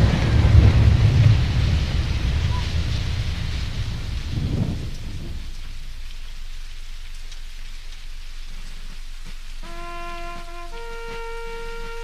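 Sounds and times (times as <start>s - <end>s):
low thunder rumble: 0.0s - 7.8s
steady rain: 0.0s - 12.0s
held musical notes: 9.6s - 12.0s.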